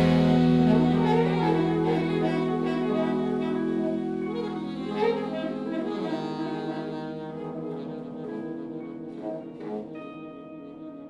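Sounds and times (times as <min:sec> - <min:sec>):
drums: 0:00.0 - 0:01.9
double bass: 0:00.0 - 0:11.0
saxophones holding long notes: 0:00.0 - 0:11.0.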